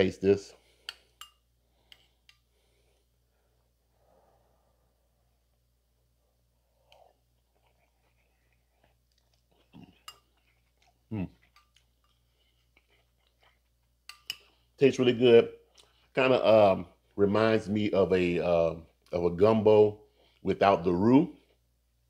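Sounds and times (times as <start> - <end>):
soft chewing: 0.5 - 3.6, 6.3 - 14.9, 15.6 - 16.2, 18.7 - 19.2
spoon clicking against a bowl: 0.9 - 1.4, 14.1 - 14.4.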